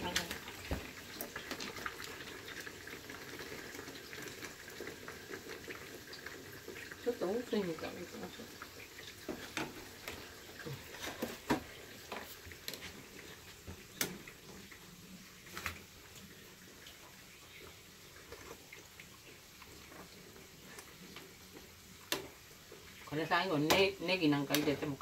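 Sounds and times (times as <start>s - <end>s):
soup bubbling: 0.0s - 25.0s.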